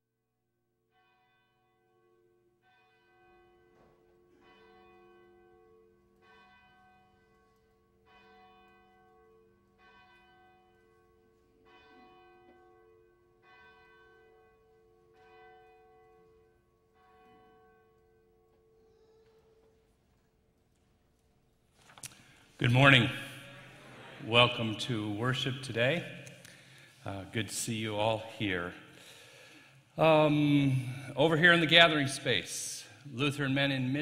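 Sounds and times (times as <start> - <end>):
church bell tolling faintly: 0.9 - 20.2, 22.2 - 34.0.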